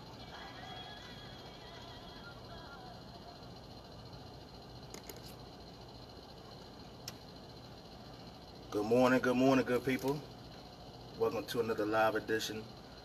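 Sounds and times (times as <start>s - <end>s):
faint song: 0.0s - 3.9s
steady low hum: 0.0s - 13.0s.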